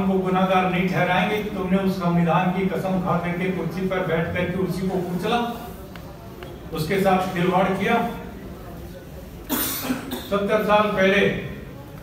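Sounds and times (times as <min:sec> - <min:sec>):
person coughing: 0:09.5 - 0:10.4.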